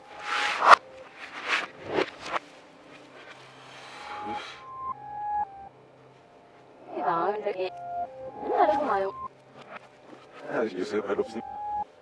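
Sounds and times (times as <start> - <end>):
soft electronic music tones: 0.0 - 12.0.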